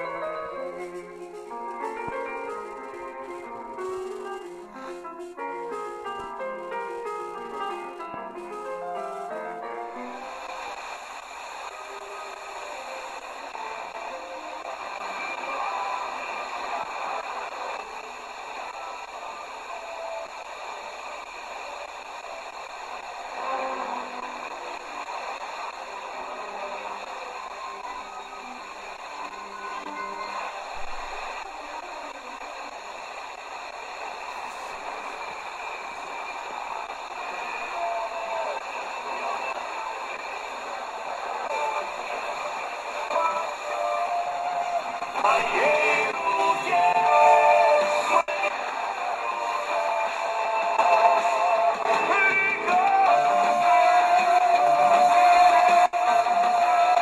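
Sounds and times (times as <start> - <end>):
music from radio speaker: 0.0 - 57.0
radio static hiss: 0.0 - 57.0.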